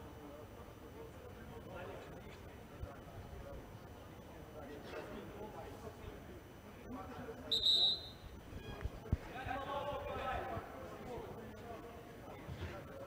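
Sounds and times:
high whistle blast: 7.5s - 8.2s.

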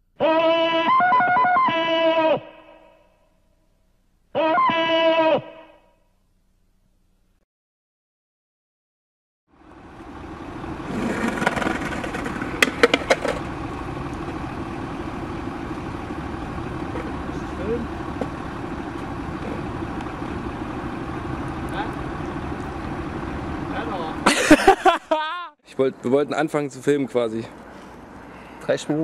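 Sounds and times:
indistinct voices: 4.4s - 5.8s
large vehicle engine running: 9.5s - 25.1s
sharp clacks: 11.2s - 13.5s
knocks: 11.4s - 13.4s.

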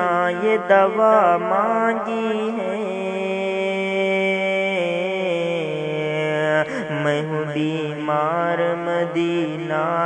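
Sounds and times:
person singing unaccompanied: 0.0s - 10.0s.

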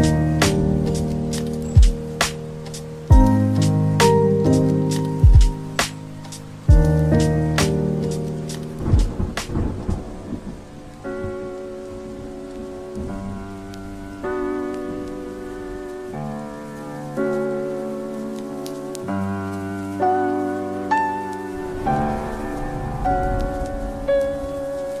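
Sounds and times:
lofi hip hop beat: 0.0s - 25.0s
soft keyboard chords: 0.0s - 25.0s
steady rain: 0.0s - 25.0s
thunder rumble: 0.0s - 25.0s.

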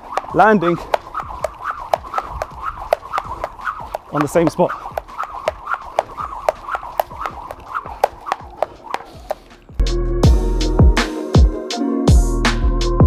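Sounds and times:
jump rope slapping mat: 0.0s - 9.8s.

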